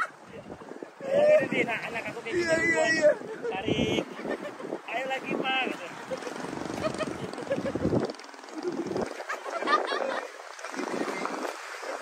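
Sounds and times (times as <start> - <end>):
water noise: 0.0 - 12.0
wind on microphone: 0.0 - 12.0
person speaking loudly: 1.2 - 4.0.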